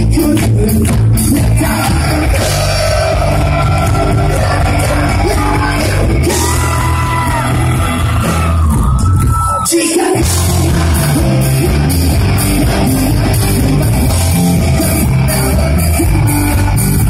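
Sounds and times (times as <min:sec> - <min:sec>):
person singing: 0:00.0 - 0:08.8, 0:09.5 - 0:17.0
live pop-punk band: 0:00.0 - 0:17.0.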